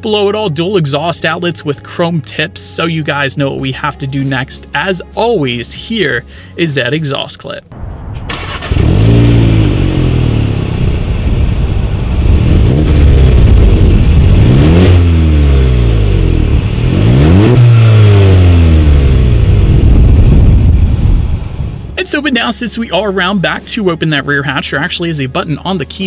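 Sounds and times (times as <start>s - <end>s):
car engine revving: 7.8s - 22.0s.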